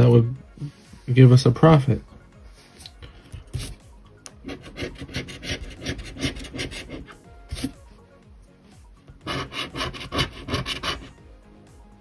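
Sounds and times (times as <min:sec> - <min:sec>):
coin scratching lottery ticket: 0:04.4 - 0:07.8, 0:09.2 - 0:11.1.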